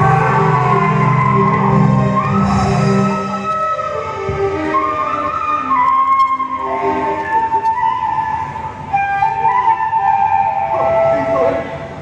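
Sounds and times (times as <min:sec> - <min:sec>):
flute playing slow melody: 0:00.0 - 0:12.0.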